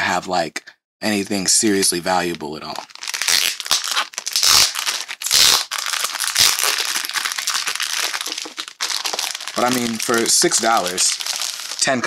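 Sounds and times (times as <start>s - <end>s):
plastic wrap crinkling: 2.3s - 12.0s.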